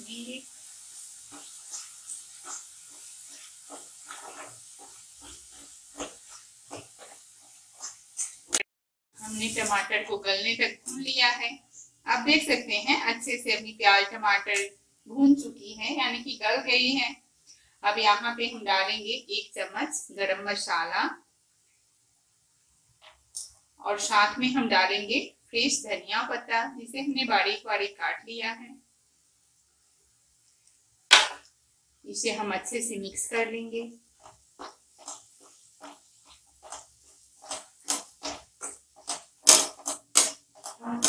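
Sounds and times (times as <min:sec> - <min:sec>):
woman speaking: 0:00.0 - 0:00.4, 0:09.2 - 0:17.2, 0:17.8 - 0:21.2, 0:23.8 - 0:28.8, 0:32.1 - 0:34.0, 0:40.8 - 0:41.0
masala sizzling in a pan: 0:00.0 - 0:08.6, 0:09.2 - 0:41.0
spatula scraping and knocking pan: 0:01.2 - 0:08.6, 0:34.1 - 0:41.0
high hiss: 0:09.2 - 0:09.9.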